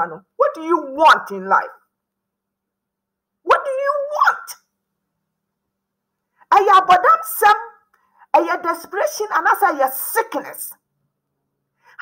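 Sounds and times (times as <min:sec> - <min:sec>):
woman's voice: 0:00.0 - 0:01.8, 0:03.5 - 0:04.6, 0:06.4 - 0:10.8.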